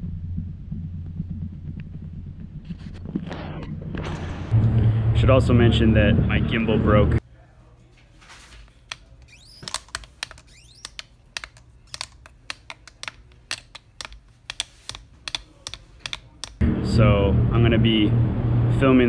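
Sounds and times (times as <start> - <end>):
short rising motor whine: 16.6 - 19.0.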